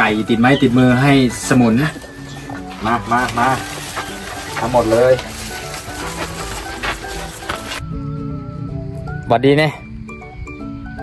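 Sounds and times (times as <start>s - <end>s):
plastic bag crinkling: 1.4s - 7.8s.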